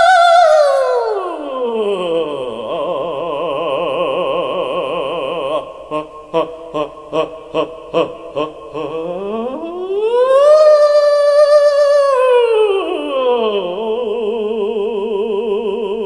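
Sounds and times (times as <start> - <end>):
man singing operatically: 0.0 - 16.0.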